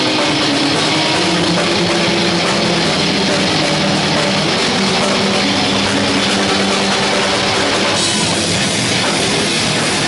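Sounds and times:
bass guitar low notes: 0.0 - 10.0
distorted electric guitars: 0.0 - 10.0
drums: 0.0 - 10.0.

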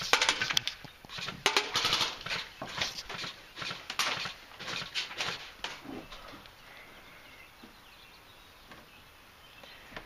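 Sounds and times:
pellets striking: 0.0 - 5.4
airsoft rifle firing: 0.0 - 5.5.

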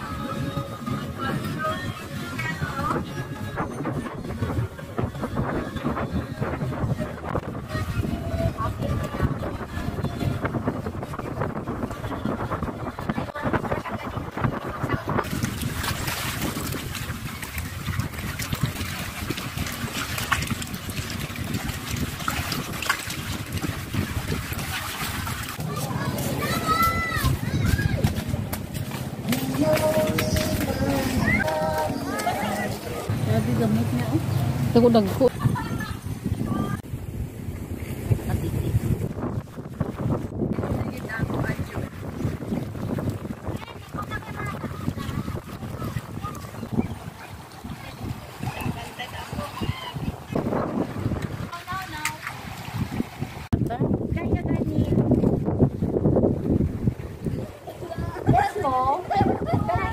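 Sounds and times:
faint voices: 0.0 - 15.9, 25.6 - 36.8, 42.9 - 52.3
wind buffeting microphone: 0.0 - 59.9
small waves splashing on boulders: 10.4 - 34.6, 36.8 - 59.9.

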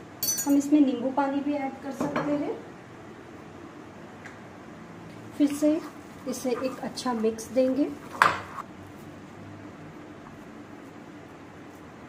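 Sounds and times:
low hum of room background: 0.0 - 12.0.

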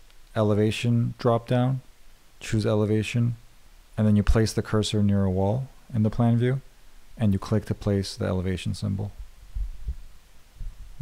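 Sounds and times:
soft low thumps: 9.1 - 11.0.

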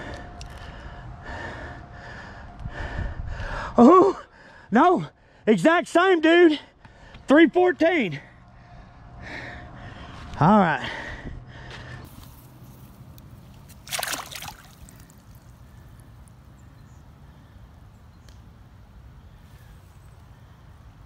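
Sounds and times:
water sloshing: 13.5 - 15.6
water splash: 13.7 - 15.4.

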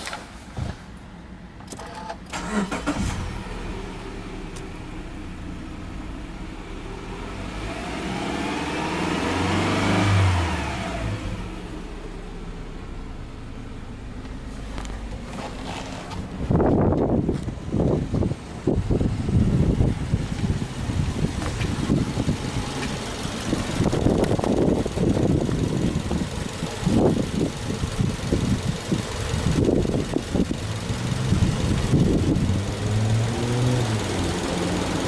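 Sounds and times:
car engine starting and idling: 0.0 - 35.0
engine revving: 2.3 - 13.6, 18.2 - 35.0.

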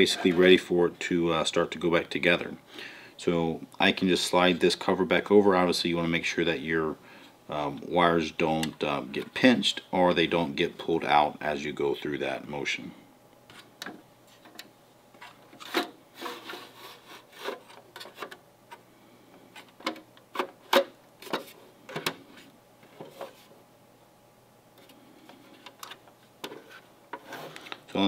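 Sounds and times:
plastic scraping on plastic: 15.2 - 18.8, 24.8 - 27.9.

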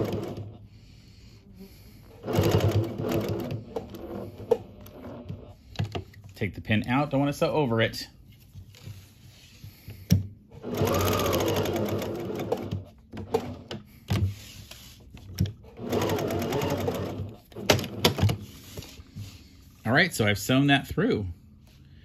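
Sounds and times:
sewing machine stitching: 0.0 - 0.6, 2.1 - 5.6, 10.5 - 13.8, 15.4 - 18.5.

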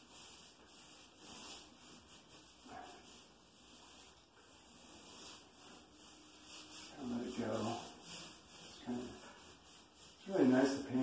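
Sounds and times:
paintbrush swishing on wall: 0.0 - 11.0.

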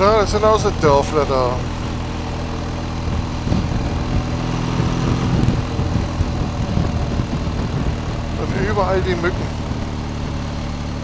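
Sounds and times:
motorcycle engine running: 0.0 - 11.0
wind noise: 3.0 - 10.0.

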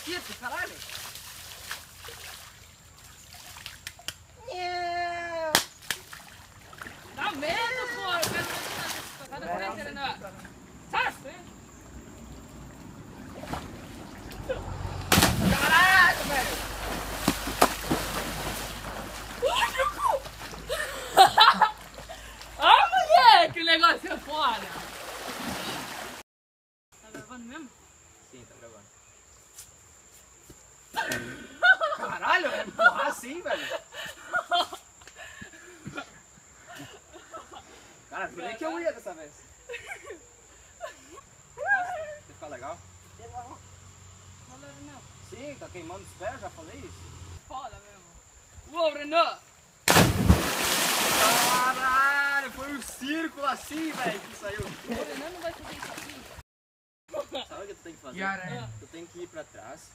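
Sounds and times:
water splashing: 0.0 - 4.1, 5.8 - 9.3, 10.2 - 23.5, 24.1 - 26.2, 49.9 - 56.4
young people shouting: 7.2 - 8.4, 15.5 - 16.5, 19.4 - 20.3, 22.6 - 23.6
men laughing: 14.4 - 14.8, 19.4 - 22.4, 31.0 - 37.8, 39.6 - 42.1
high insect buzz: 49.4 - 52.3
young men talking: 51.2 - 55.5, 57.2 - 59.9.

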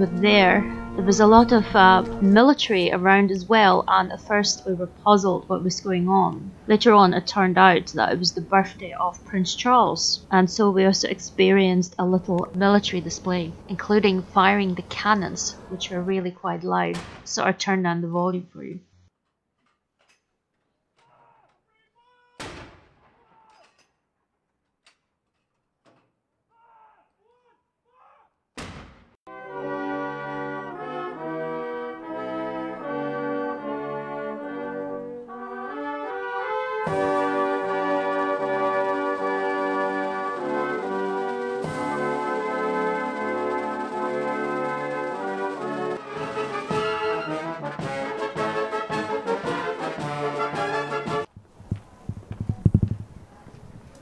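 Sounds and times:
military brass band playing: 0.0 - 3.1, 29.3 - 51.3
cannon shots: 22.4 - 23.3.

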